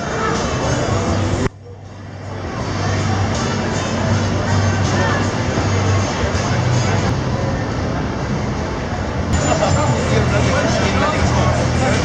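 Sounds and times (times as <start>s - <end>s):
cars driving by: 0.0s - 12.0s
hubbub of voices: 0.0s - 12.0s
music playing: 0.0s - 12.0s.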